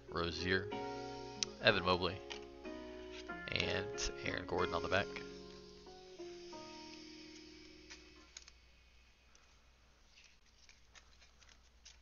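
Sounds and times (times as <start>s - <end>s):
faint held music chord: 0.0s - 9.3s
trading cards being handled: 6.9s - 12.0s.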